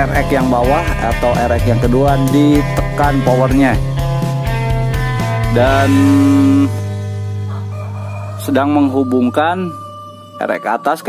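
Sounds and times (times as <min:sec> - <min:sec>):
faint background music: 0:00.0 - 0:11.0
man drawing out a word: 0:05.6 - 0:06.7.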